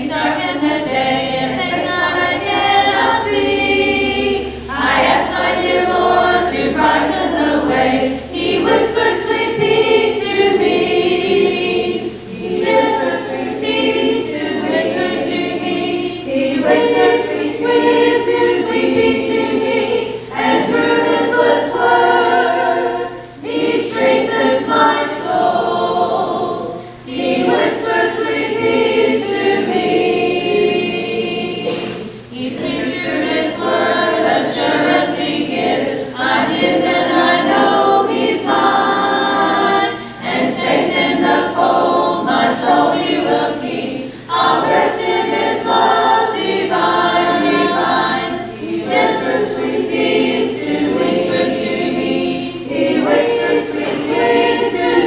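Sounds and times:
congregation singing a hymn: 0.0s - 55.0s.

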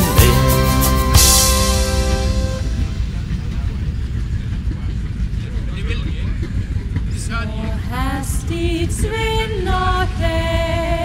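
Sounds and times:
men talking: 0.0s - 1.2s, 3.0s - 7.8s
low outdoor rumble: 0.0s - 11.0s.

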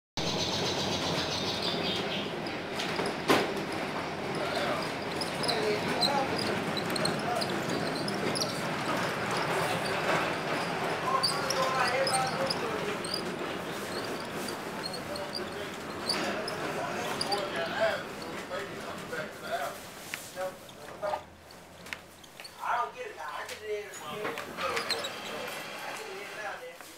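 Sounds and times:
trolley car running rumble: 0.2s - 19.4s
indistinct voices: 0.9s - 19.8s, 22.5s - 26.7s.

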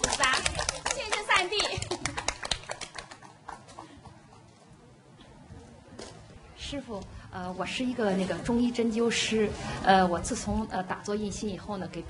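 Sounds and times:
crowd hand claps: 0.0s - 4.1s.

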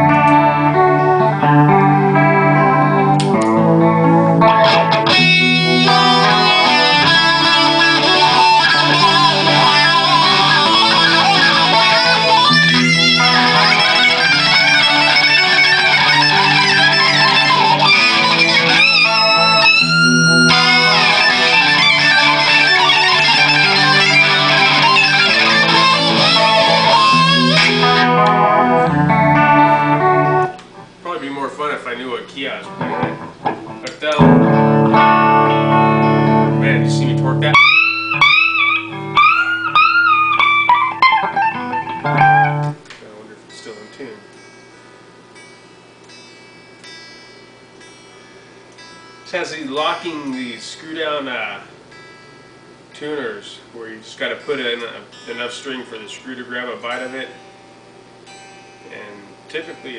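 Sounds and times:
electric guitar through amplifier: 0.0s - 59.9s.

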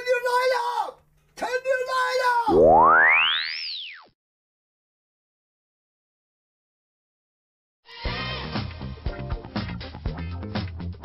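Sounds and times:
tone sweeping up and down: 2.5s - 4.1s.

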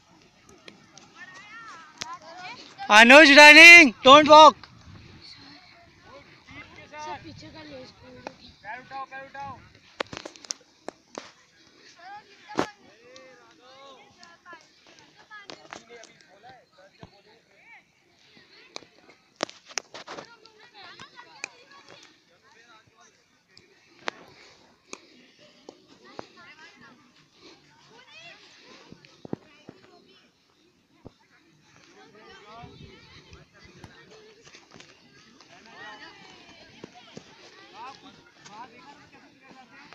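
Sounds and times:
children calling out and chattering: 0.0s - 8.6s, 17.7s - 39.9s.

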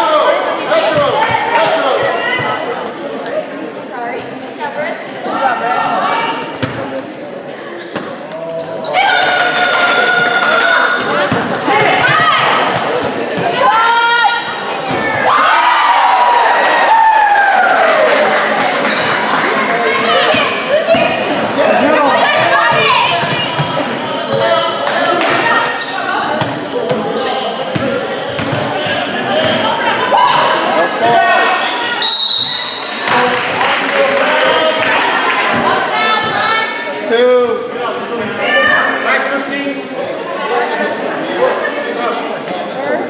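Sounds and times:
sneaker squeaks: 7.7s - 9.3s, 10.7s - 13.8s, 14.7s - 15.5s, 18.2s - 19.6s, 20.9s - 21.5s, 22.4s - 29.7s, 30.8s - 33.2s, 42.3s - 43.0s.

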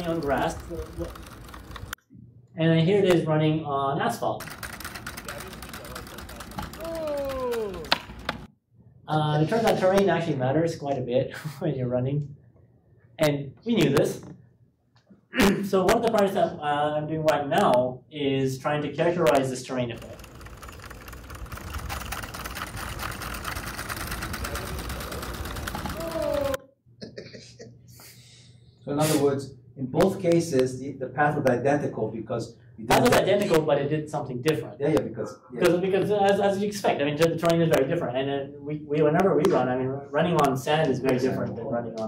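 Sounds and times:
robot feet and motors clicking: 20.0s - 26.0s.

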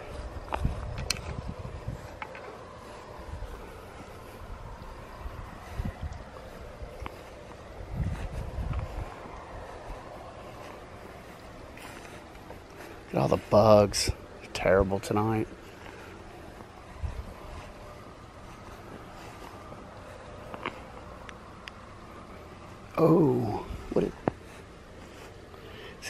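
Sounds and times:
wind rumble on microphone: 0.0s - 24.6s.

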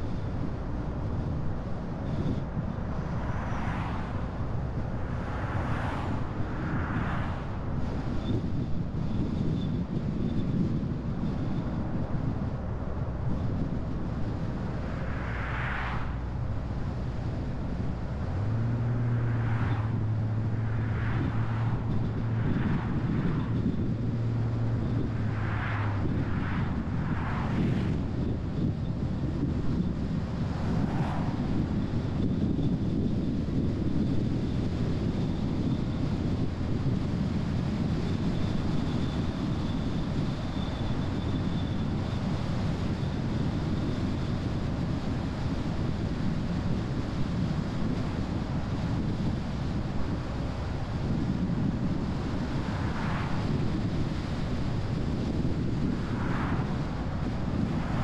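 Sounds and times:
road and tyre rumble: 0.0s - 58.0s
wind noise: 0.0s - 58.0s
passing vehicle whooshes: 1.7s - 11.6s, 13.3s - 58.0s.

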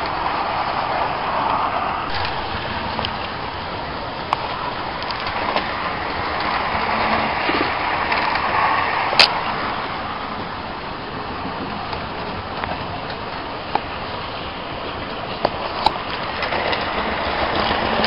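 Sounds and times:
train rushing rumble: 0.0s - 18.0s.

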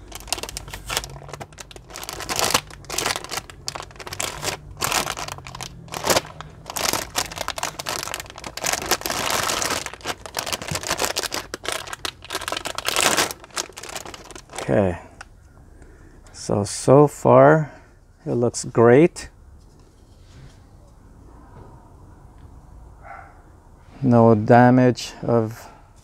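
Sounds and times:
anti-static bag crinkling: 0.0s - 15.0s.

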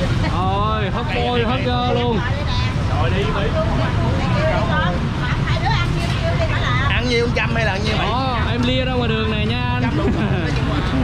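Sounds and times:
people talking: 0.0s - 11.0s
street traffic rumble: 0.0s - 11.0s.

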